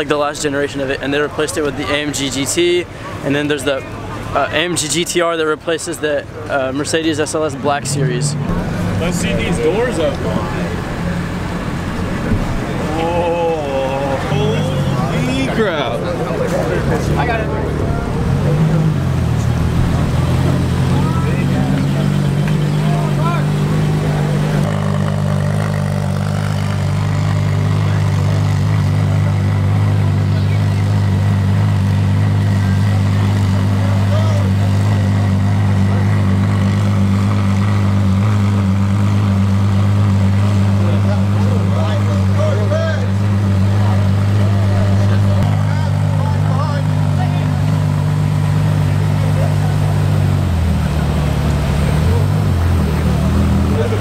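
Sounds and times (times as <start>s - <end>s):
car engine idling: 0.0s - 54.0s
crowd chatter: 0.0s - 54.0s.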